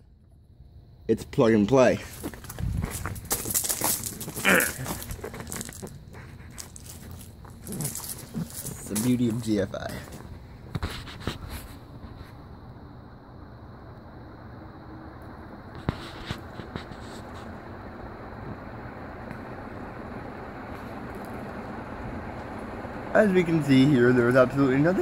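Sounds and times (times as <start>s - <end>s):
ceiling fan whooshing hum: 0.0s - 25.0s.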